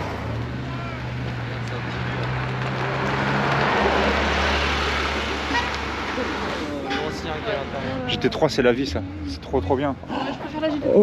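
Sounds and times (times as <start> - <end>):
sports cars driving past: 0.0 - 11.0.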